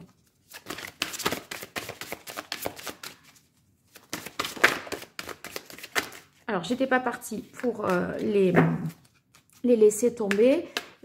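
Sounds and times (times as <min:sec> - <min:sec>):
cards being shuffled: 0:00.0 - 0:06.4, 0:07.6 - 0:09.7.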